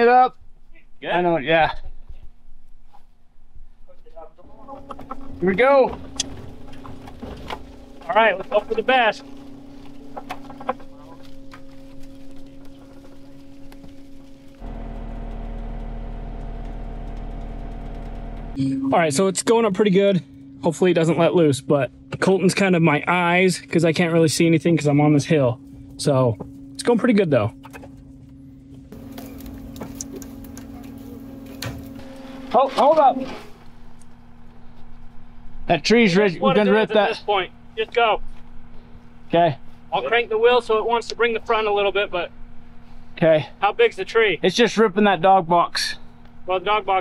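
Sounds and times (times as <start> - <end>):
vehicle engine running: 4.4 - 47.0
engine hum inside vehicle cab: 4.6 - 18.9, 25.6 - 42.8.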